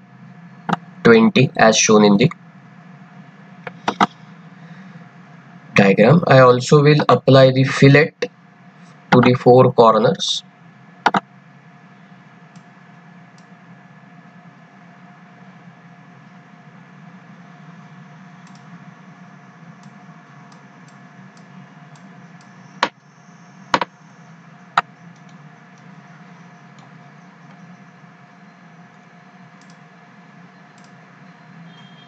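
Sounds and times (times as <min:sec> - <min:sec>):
steady low hum: 0:00.0 - 0:32.0
computer mouse clicks: 0:03.7 - 0:04.2, 0:18.4 - 0:18.7, 0:29.6 - 0:29.8, 0:30.7 - 0:31.0.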